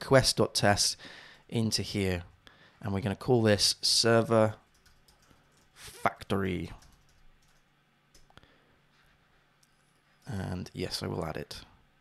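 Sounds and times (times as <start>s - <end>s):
faint keyboard clicks: 4.7s - 5.7s, 6.7s - 8.4s.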